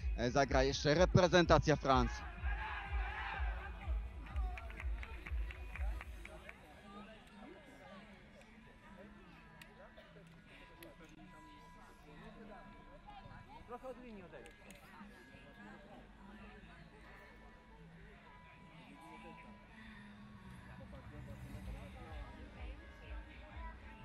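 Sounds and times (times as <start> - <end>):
faint voices of players calling: 1.9 - 24.0
team shouting together: 2.1 - 4.3
rhythmic clapping: 2.9 - 6.7.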